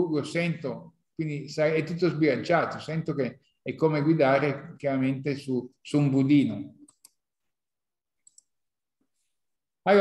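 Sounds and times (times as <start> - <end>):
computer mouse clicks: 6.8 - 7.2, 8.2 - 8.6.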